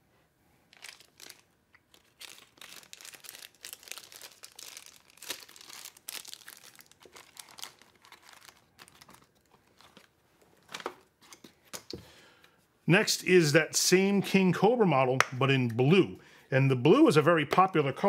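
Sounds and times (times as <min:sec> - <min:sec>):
packaging crinkling and rustling: 0:00.7 - 0:11.5.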